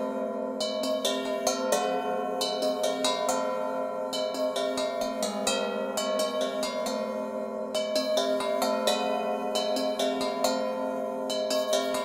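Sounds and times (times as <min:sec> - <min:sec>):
gongs struck with mallets: 0:00.0 - 0:12.0.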